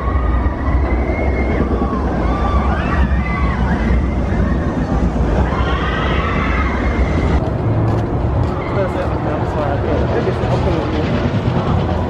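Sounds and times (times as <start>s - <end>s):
riders screaming: 0.0s - 7.4s
roller coaster rumbling on track: 0.0s - 12.0s.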